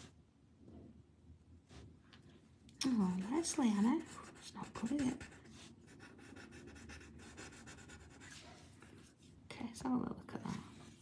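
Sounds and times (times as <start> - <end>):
pencil scratching on paper: 3.0 - 9.2.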